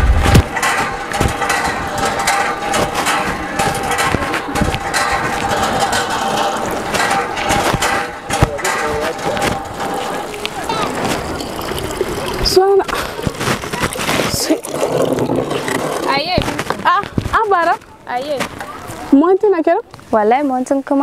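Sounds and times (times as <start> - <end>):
mechanical knocks: 0.0 - 19.2
hand water pump working: 0.0 - 20.3
indistinct voices: 0.0 - 20.3.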